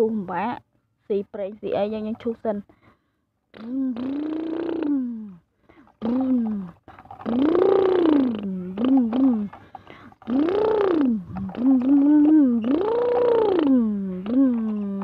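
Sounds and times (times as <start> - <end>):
person imitating engine: 3.5 - 15.0.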